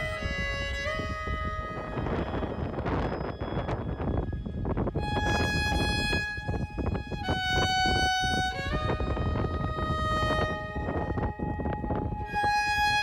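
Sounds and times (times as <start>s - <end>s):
fiddle music: 0.0s - 13.0s.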